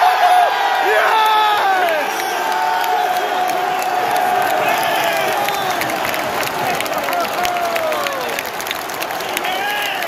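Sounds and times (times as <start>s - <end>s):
crowd cheering and chanting: 0.0s - 10.0s
clapping: 1.6s - 10.0s.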